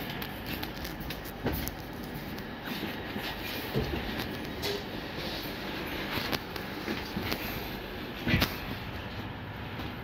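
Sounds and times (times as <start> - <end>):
train wheels rumbling on rail: 0.0 - 10.0.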